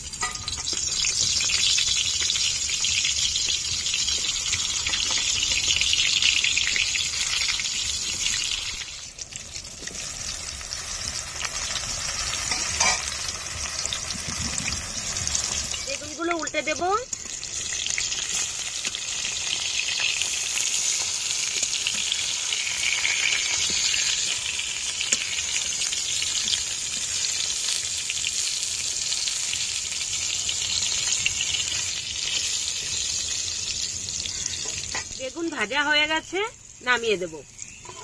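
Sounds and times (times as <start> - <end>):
vegetable slices sizzling in oil: 0.0 - 38.0.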